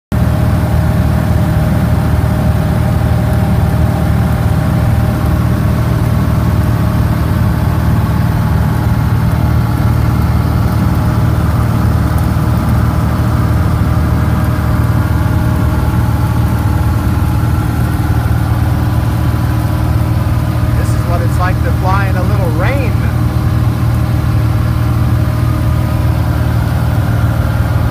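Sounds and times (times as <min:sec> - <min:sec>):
airplane engine drone in cabin: 0:00.1 - 0:27.9.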